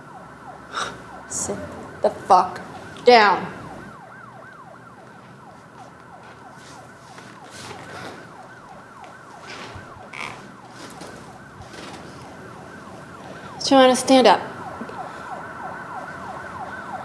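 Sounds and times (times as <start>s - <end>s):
faint siren yelping: 0.0s - 17.0s.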